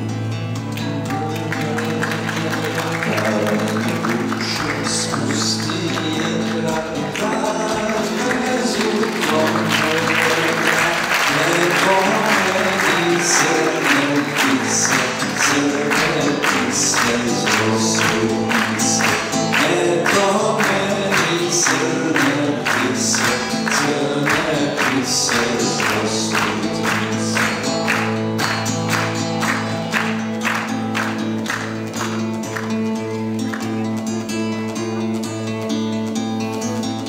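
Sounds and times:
acoustic guitars strumming: 0:00.0 - 0:37.0.

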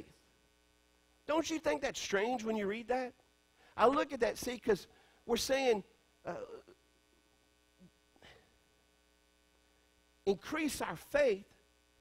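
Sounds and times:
electrical mains hum: 0:00.0 - 0:12.0
man saying uh: 0:05.3 - 0:06.8.

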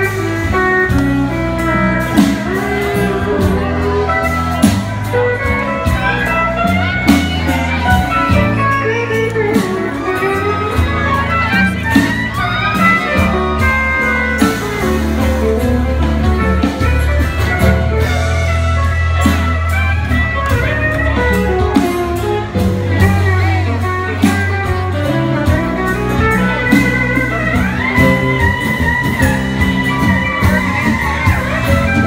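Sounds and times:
live blues band playing: 0:00.0 - 0:32.0.

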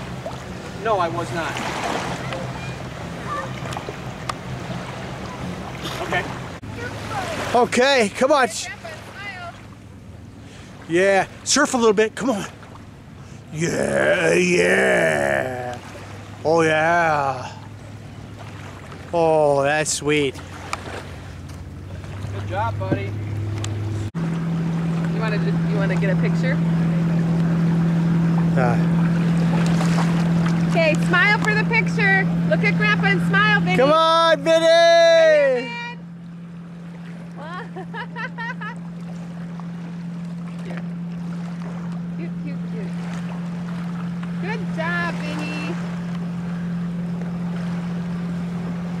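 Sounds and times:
boat engine humming: 0:00.0 - 0:49.0
water noise: 0:00.0 - 0:49.0
wind: 0:00.0 - 0:49.0.

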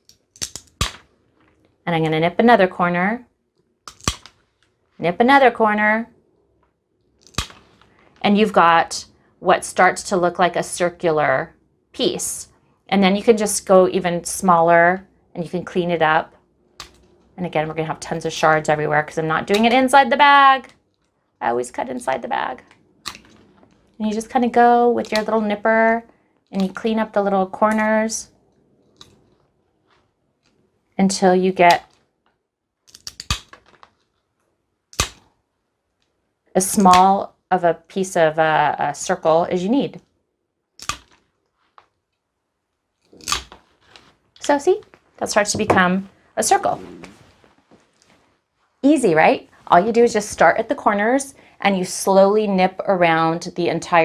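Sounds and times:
glass snapping crack: 0:00.0 - 0:01.1, 0:03.9 - 0:04.4, 0:07.2 - 0:07.6, 0:32.9 - 0:33.9, 0:35.0 - 0:35.2, 0:40.8 - 0:41.3, 0:43.2 - 0:43.6
glass tile snapping: 0:00.1 - 0:01.0.

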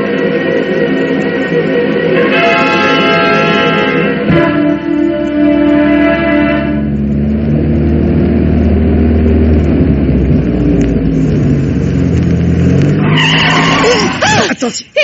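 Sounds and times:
car engine running: 0:00.0 - 0:14.4
tyres screeching: 0:11.2 - 0:14.7.

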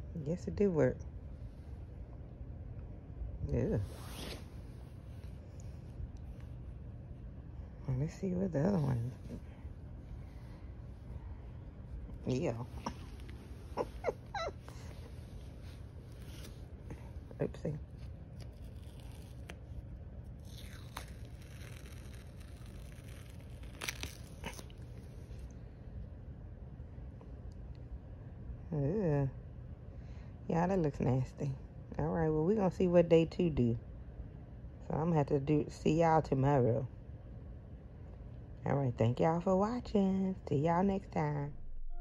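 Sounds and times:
steady low hum: 0:00.0 - 0:42.0
adhesive pad crackling: 0:18.0 - 0:19.8, 0:20.4 - 0:24.8.

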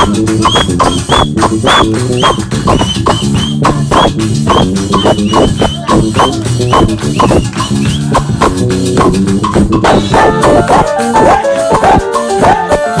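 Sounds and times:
bass line: 0:00.0 - 0:13.0
drum kit beat: 0:00.0 - 0:13.0.

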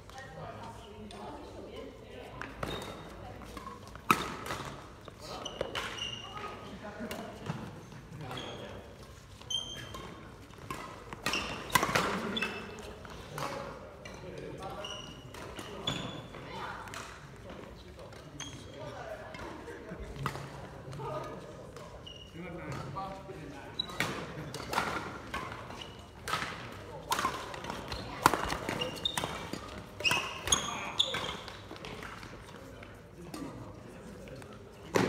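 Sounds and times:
rackets hitting shuttlecock: 0:09.8 - 0:13.6, 0:23.9 - 0:33.6
shoes squeaking on wooden floor: 0:27.8 - 0:31.8.

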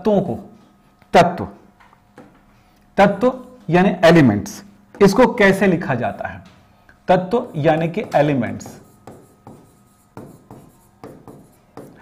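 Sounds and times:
marker pen writing on board: 0:07.4 - 0:12.0.

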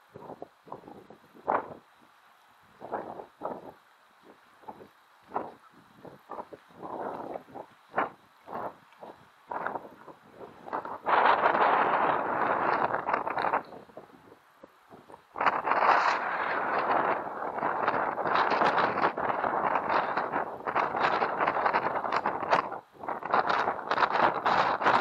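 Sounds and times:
wind buffeting microphone: 0:00.0 - 0:02.0, 0:02.6 - 0:25.0.

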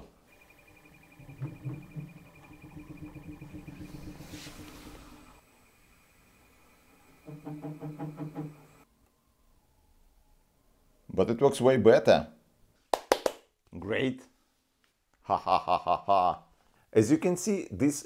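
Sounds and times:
actuator humming with high whine: 0:00.2 - 0:08.8.

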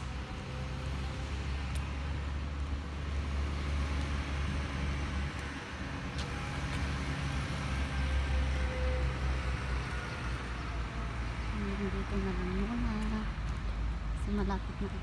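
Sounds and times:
road traffic rumble: 0:00.0 - 0:15.0
vehicle engine hum: 0:00.0 - 0:15.0.

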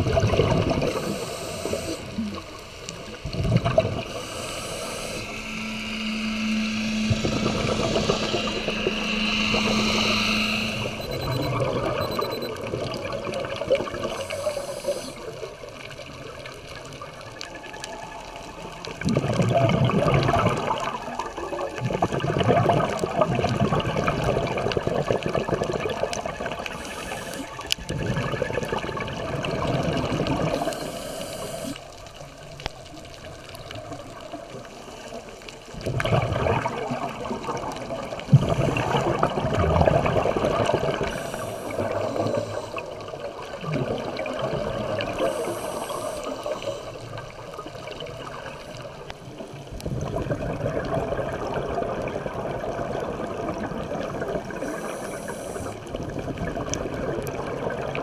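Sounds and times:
exhaled bubbles rushing: 0:00.0 - 0:31.4, 0:32.1 - 0:58.0
hissing regulator inhalations: 0:00.8 - 0:03.2, 0:04.0 - 0:12.5, 0:14.0 - 0:15.5, 0:26.7 - 0:27.8, 0:30.4 - 0:31.9, 0:41.0 - 0:43.4, 0:45.1 - 0:47.2, 0:54.6 - 0:55.8
steady low hum: 0:04.0 - 0:12.5.

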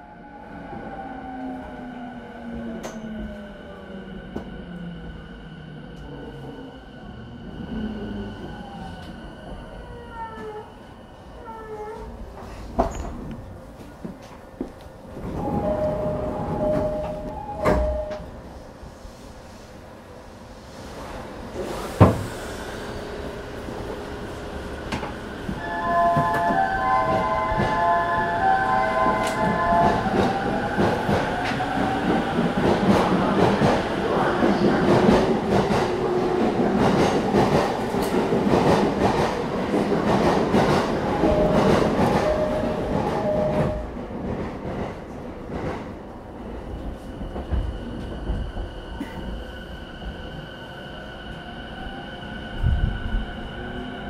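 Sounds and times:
train rail noise: 0:11.4 - 0:54.0.

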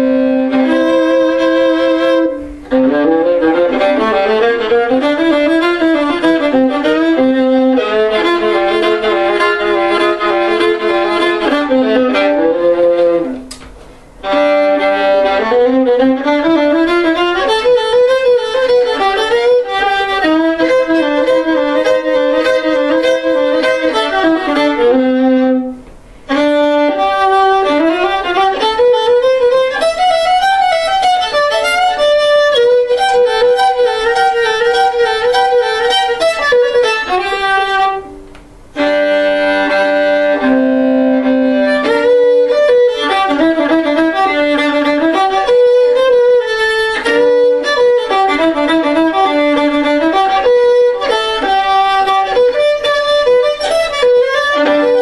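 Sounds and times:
bowed fiddle melody: 0:00.0 - 0:55.0.

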